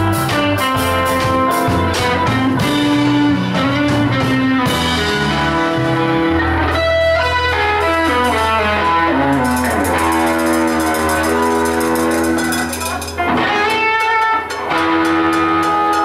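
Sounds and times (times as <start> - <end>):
electric guitar lead: 0.0 - 16.0
live band playing: 0.0 - 16.0.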